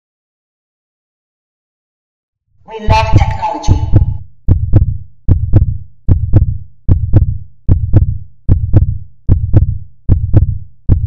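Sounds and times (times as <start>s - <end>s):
heartbeat thumps: 2.9s - 11.0s.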